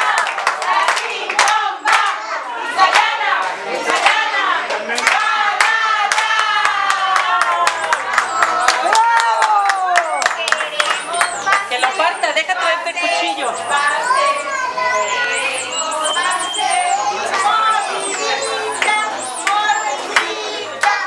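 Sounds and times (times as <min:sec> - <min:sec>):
people clapping in rhythm: 0:00.0 - 0:14.1, 0:15.1 - 0:21.0
voices singing and calling out: 0:00.0 - 0:21.0.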